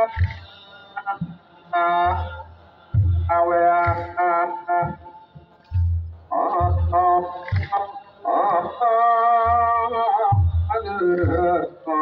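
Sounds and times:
deep slow drum beats: 0:00.0 - 0:00.6, 0:01.2 - 0:07.9, 0:08.5 - 0:11.9.

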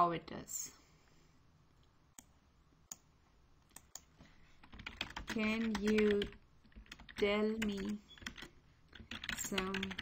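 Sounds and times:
computer keyboard typing: 0:03.7 - 0:10.0.

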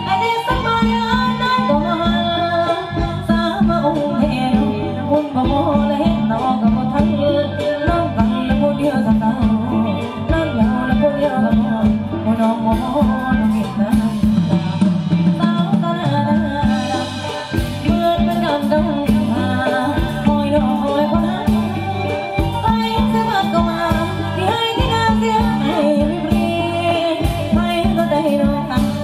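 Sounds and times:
conga drums: 0:00.0 - 0:29.0
electric guitar: 0:00.0 - 0:29.0
live band dance music: 0:00.0 - 0:29.0
person singing: 0:00.0 - 0:29.0.

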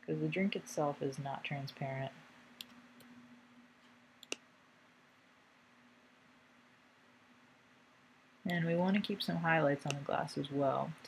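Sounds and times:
faint steady hum: 0:00.0 - 0:11.0
computer mouse click: 0:02.6 - 0:03.2, 0:04.2 - 0:04.4
tiny ticks: 0:04.2 - 0:04.4.

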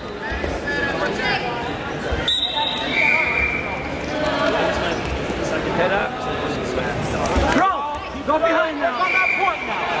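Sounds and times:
voices in a gymnasium: 0:00.0 - 0:10.0.

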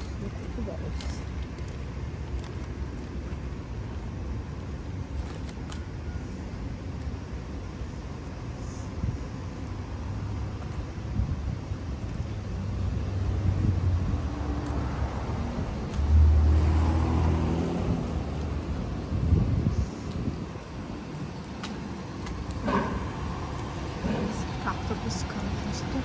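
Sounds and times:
traffic noise: 0:00.0 - 0:26.0
vehicle engine rumbling: 0:00.0 - 0:26.0.

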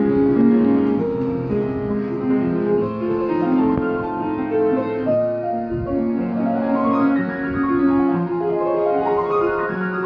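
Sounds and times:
piano: 0:00.0 - 0:10.0.

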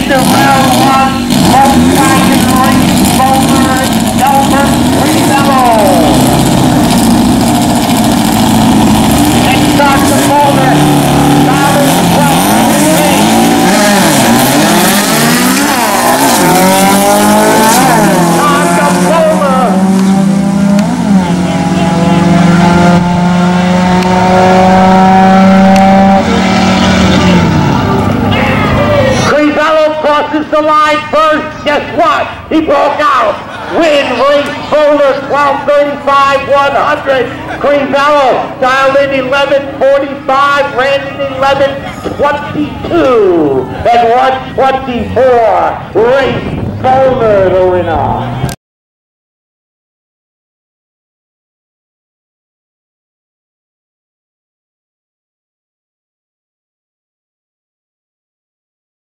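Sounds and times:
car engines revving: 0:00.0 - 0:48.6
engines at full throttle: 0:00.0 - 0:48.6.

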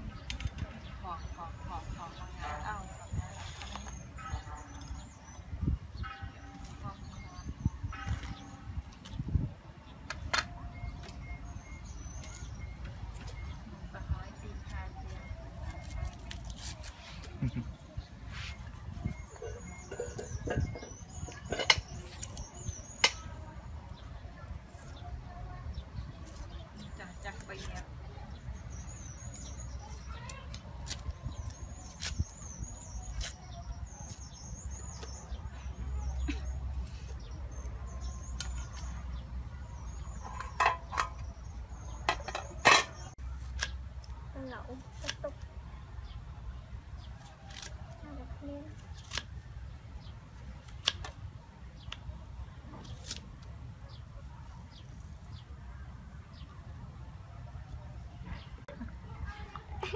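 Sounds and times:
small birds chirping: 0:00.0 - 0:59.9.

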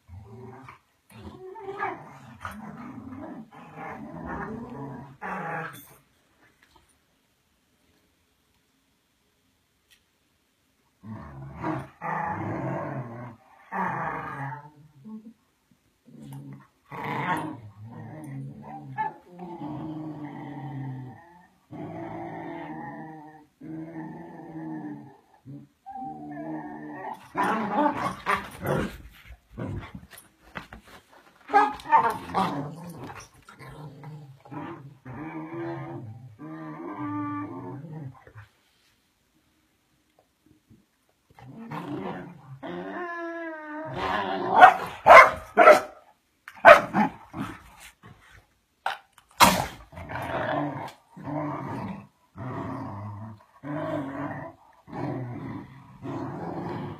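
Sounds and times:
dogs growling: 0:49.5 - 0:56.9.

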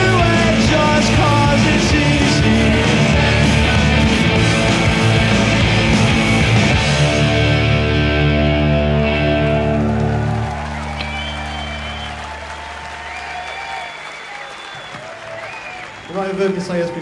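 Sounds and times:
crowd applauding and cheering: 0:00.0 - 0:17.0
electric guitar chord ringing: 0:05.1 - 0:10.4
long whistles: 0:10.8 - 0:16.4.

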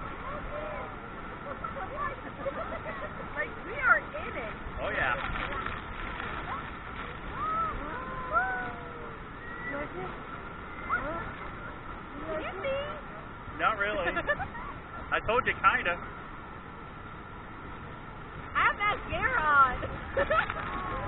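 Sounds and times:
people crying out and whooping: 0:07.3 - 0:09.9.

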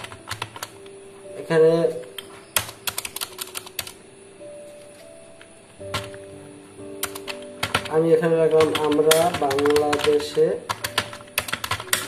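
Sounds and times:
computer keyboard clicks: 0:00.0 - 0:00.8, 0:02.6 - 0:04.0, 0:07.0 - 0:07.9, 0:08.5 - 0:12.0.

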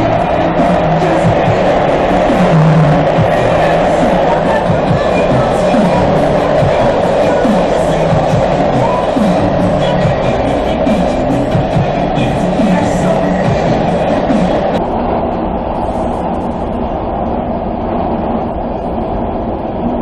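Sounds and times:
music from portable speaker: 0:00.0 - 0:14.9
subway train rumbling: 0:00.0 - 0:20.0.

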